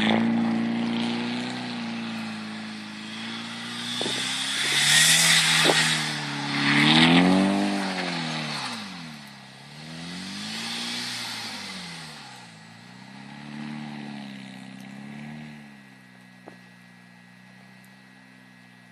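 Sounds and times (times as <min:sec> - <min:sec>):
car engine revving: 0:00.0 - 0:18.6
tyres spinning in snow: 0:00.0 - 0:18.9.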